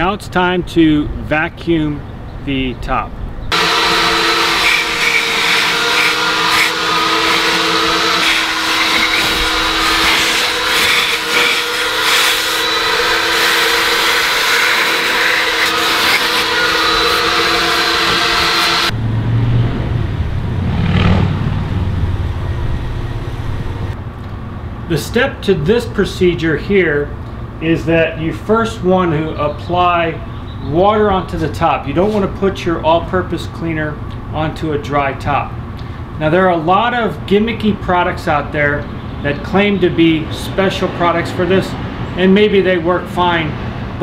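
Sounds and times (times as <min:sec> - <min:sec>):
vacuum whining: 0:03.5 - 0:19.0.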